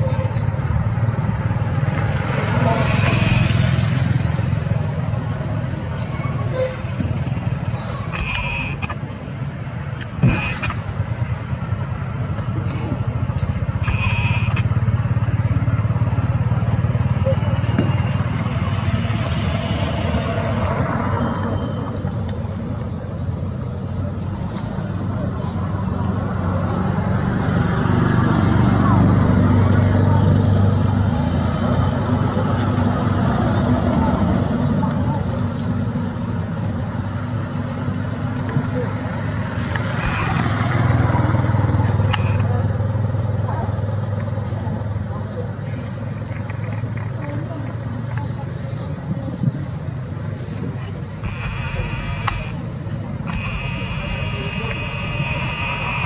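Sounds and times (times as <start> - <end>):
low engine drone: 0.1 - 35.6, 36.2 - 48.5, 49.2 - 56.0
sharp click: 10.0 - 11.0
voices in background: 31.7 - 56.0.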